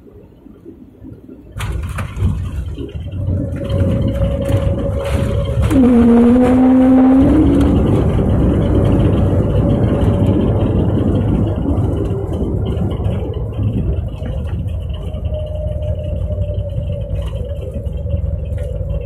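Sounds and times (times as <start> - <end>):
engine and runway rumble: 0.0 - 19.0
steady whine: 0.0 - 19.0.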